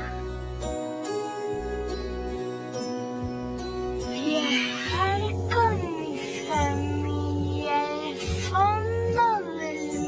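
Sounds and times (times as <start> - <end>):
music with held bass notes: 0.0 - 10.0
child singing: 4.1 - 10.0.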